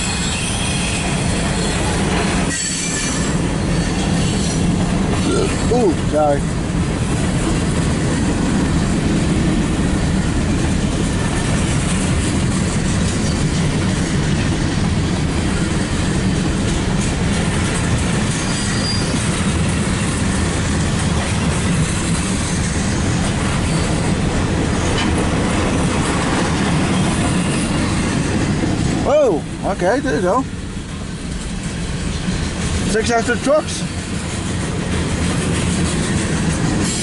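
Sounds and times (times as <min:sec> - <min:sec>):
freight train wheels on rails: 0:00.0 - 0:37.0.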